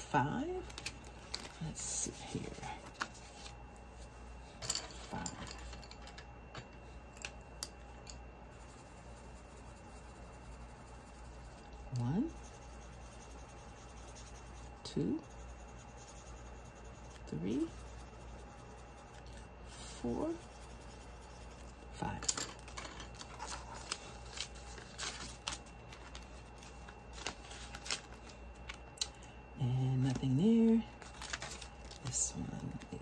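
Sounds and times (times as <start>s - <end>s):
binder pages flipping: 0.6s - 1.7s, 22.1s - 28.8s, 31.0s - 33.0s
colored pencil scratching on paper: 8.4s - 22.2s, 23.1s - 28.3s.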